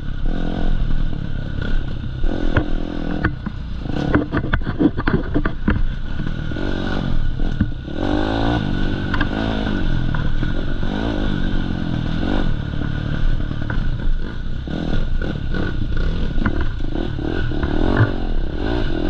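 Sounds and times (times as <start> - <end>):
bike knocking and rattling: 0.0 - 19.0
dirt bike engine revving: 0.0 - 19.0.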